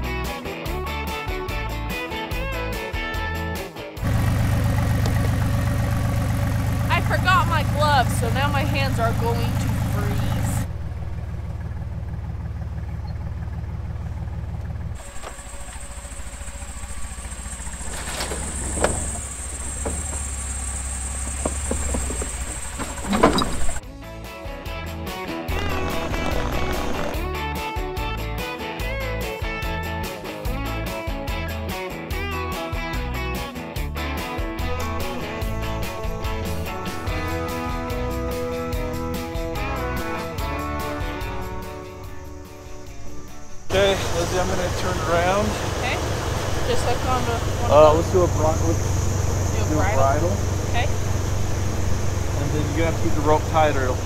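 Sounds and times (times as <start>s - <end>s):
guitar music with steady beat: 0.0s - 4.0s, 23.8s - 25.5s, 27.2s - 43.4s
engine drone with high whine: 4.0s - 23.9s, 34.6s - 54.0s
vehicle engine running: 4.0s - 24.2s, 25.5s - 31.0s, 34.5s - 54.0s.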